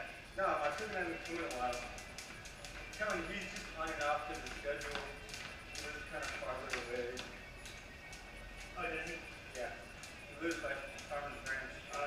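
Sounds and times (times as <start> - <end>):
background music: 0.0 - 12.0
jump ropes slapping concrete: 0.6 - 7.4.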